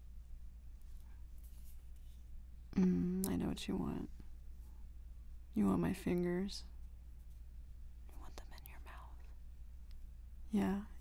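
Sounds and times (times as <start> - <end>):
steady low hum: 0.0 - 11.0
woman whispering: 8.1 - 9.4.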